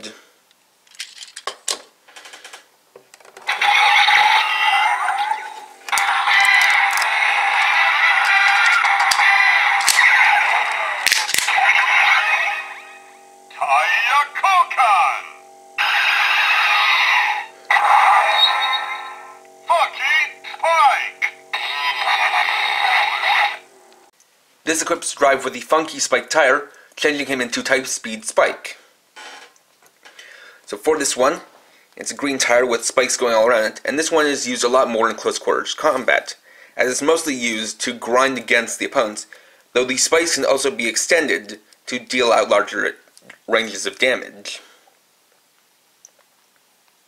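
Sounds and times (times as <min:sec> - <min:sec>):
toy electronic voice and music: 0:03.5 - 0:23.7
plastic toy clicks: 0:05.9 - 0:07.2, 0:08.2 - 0:10.2, 0:11.0 - 0:11.5.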